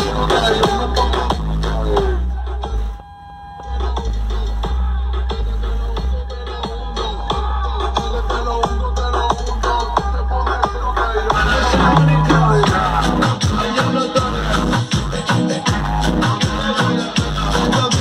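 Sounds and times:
electronic dance music with heavy bass: 0:00.0 - 0:18.0.

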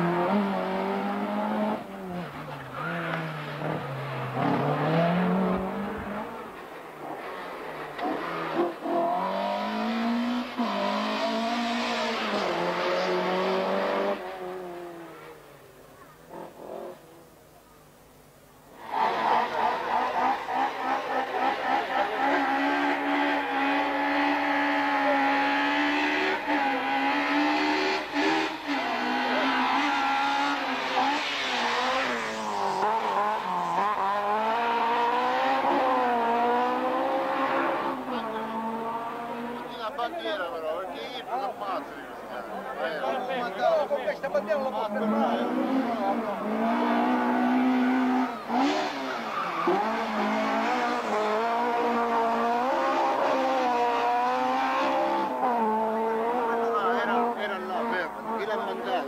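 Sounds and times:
race car engine revving: 0:00.0 - 0:15.4, 0:18.8 - 0:40.1, 0:44.2 - 0:59.0
second car engine at high revs: 0:00.0 - 0:15.4, 0:18.7 - 0:40.0, 0:44.4 - 0:59.0.

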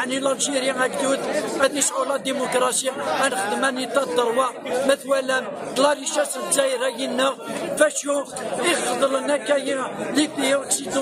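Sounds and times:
crowd chatter: 0:00.0 - 0:11.0
man talking: 0:00.0 - 0:11.0.

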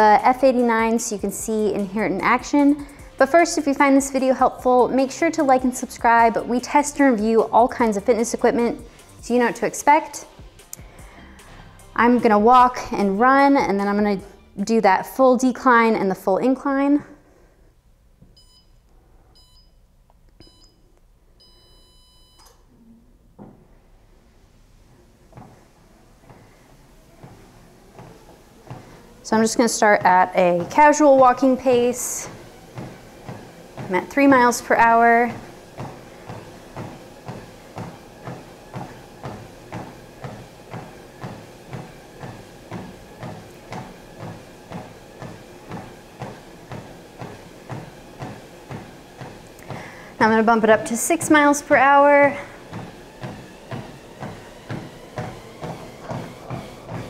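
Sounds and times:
treadmill console beeps: 0:18.3 - 0:22.7, 0:25.3 - 0:57.0.

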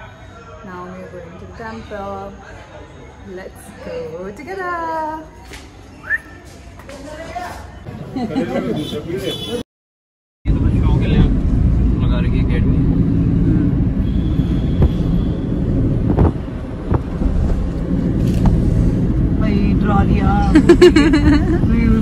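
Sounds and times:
car cabin road rumble: 0:10.5 - 0:22.0.

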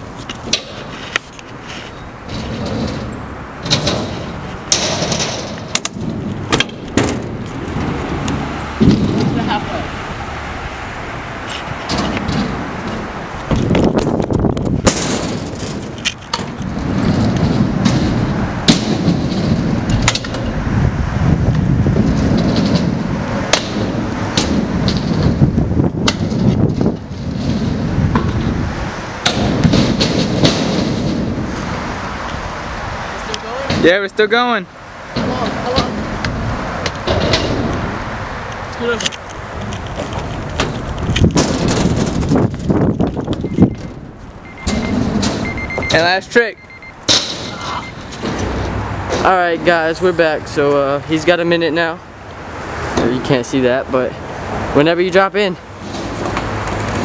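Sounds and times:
scooter wheels rumbling on concrete: 0:00.0 - 0:57.0
scooter landing clacks and thuds: 0:00.2 - 0:01.4, 0:02.2 - 0:09.6, 0:11.5 - 0:20.6, 0:21.9 - 0:31.5, 0:35.1 - 0:38.0, 0:39.7 - 0:45.9, 0:47.0 - 0:49.3.

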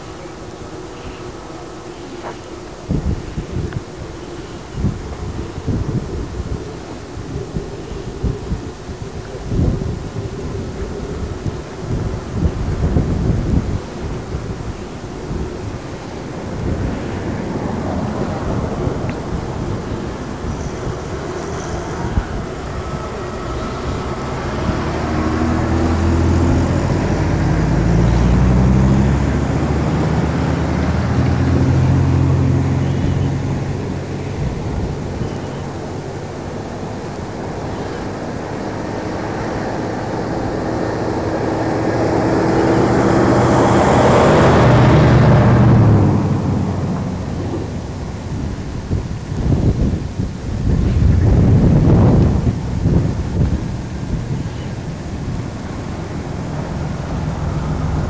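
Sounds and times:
vehicle engine hum: 0:00.0 - 0:58.0.

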